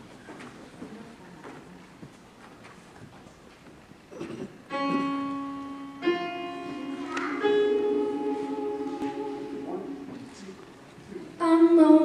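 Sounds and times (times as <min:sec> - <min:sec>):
faint hall noise: 0:00.0 - 0:12.0
piano chords: 0:04.7 - 0:12.0.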